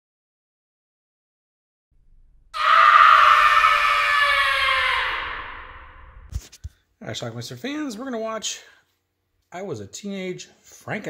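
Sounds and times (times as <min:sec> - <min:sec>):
long horror scream: 0:02.6 - 0:06.3.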